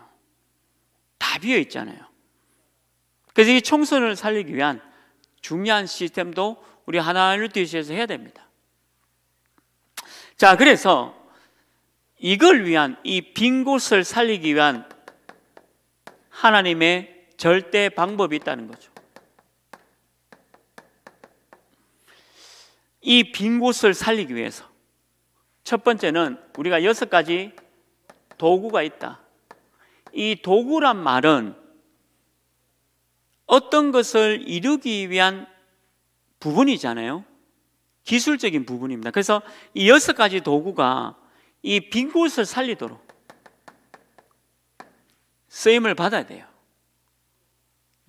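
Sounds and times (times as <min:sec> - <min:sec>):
chalk tapping on chalkboard: 0:14.7 - 0:16.4, 0:18.2 - 0:21.8, 0:26.5 - 0:26.7, 0:27.5 - 0:30.2, 0:43.0 - 0:45.1.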